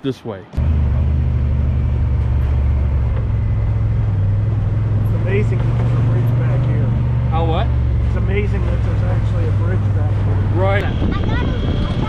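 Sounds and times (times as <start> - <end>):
engine droning: 0.5 - 12.0.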